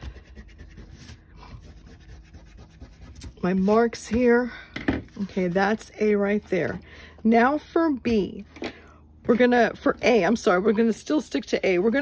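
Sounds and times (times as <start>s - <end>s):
eraser rubbing on cardstock: 0.0s - 3.9s.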